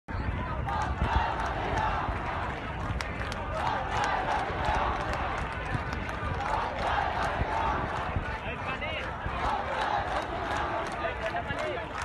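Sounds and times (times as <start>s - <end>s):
crowd chanting and shouting: 0.1s - 12.0s.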